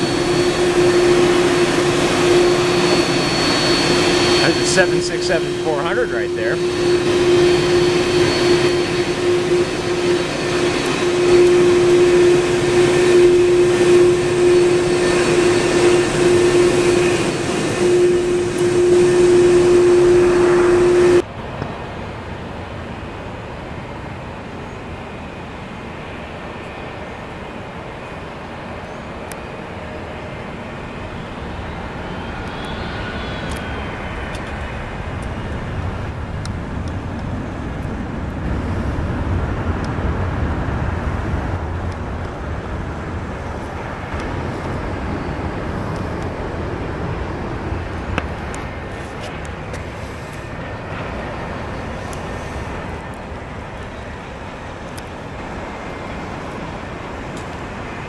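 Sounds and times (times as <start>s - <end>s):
airliner rumble on approach: 0.0s - 58.0s
jet engines roaring: 0.0s - 58.0s.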